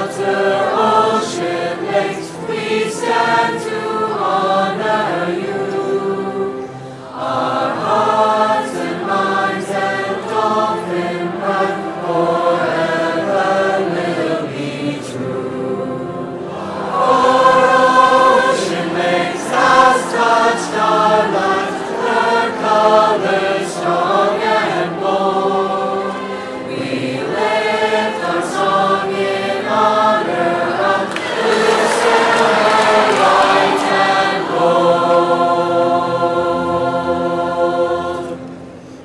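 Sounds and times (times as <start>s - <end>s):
choir singing in harmony: 0.0s - 39.0s.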